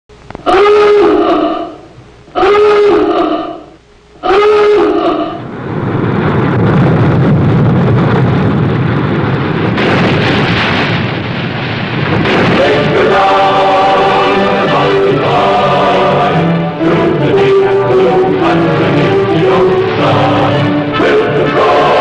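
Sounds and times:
alarm klaxon blasts: 0:00.4 - 0:05.4, 0:12.2 - 0:22.0
loud rushing noise: 0:03.6 - 0:22.0.

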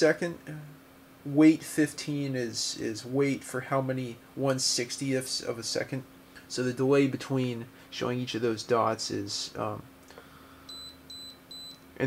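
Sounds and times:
short high-pitched beeps: 0:10.7 - 0:11.8.

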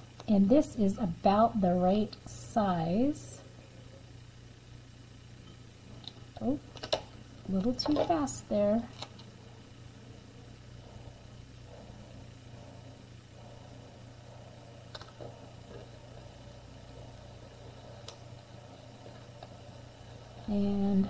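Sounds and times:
steady low hum: 0:00.0 - 0:21.0
transfer tape rustling: 0:06.0 - 0:09.4.

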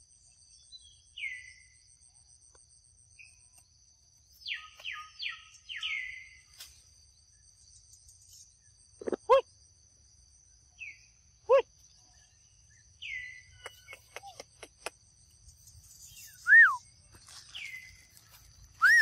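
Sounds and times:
insects droning: 0:00.0 - 0:19.0
falling whistled calls: 0:15.8 - 0:16.9, 0:18.7 - 0:19.0.

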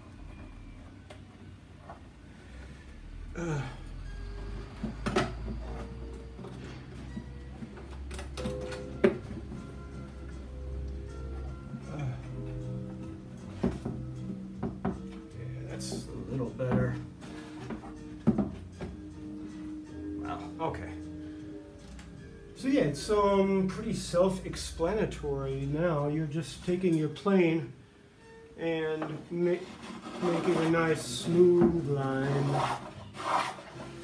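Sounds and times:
background music sustained notes: 0:00.0 - 0:34.0.

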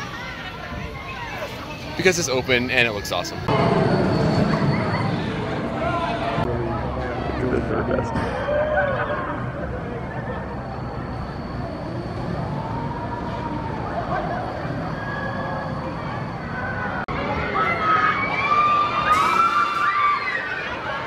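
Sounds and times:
crowd noise: 0:00.0 - 0:21.0.

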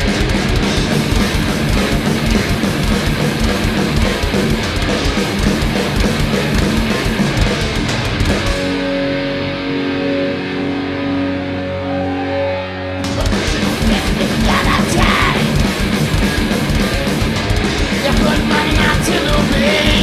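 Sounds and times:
distorted electric guitar riffing: 0:00.0 - 0:20.0
drums: 0:00.0 - 0:20.0.

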